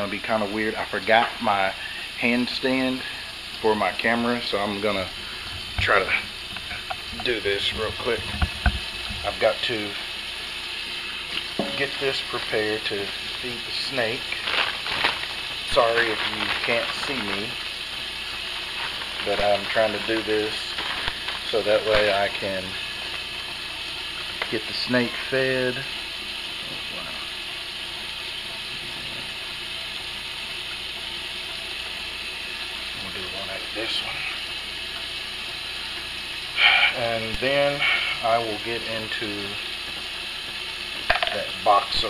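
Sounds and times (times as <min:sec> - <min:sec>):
faucet running into sink: 0:00.0 - 0:42.0.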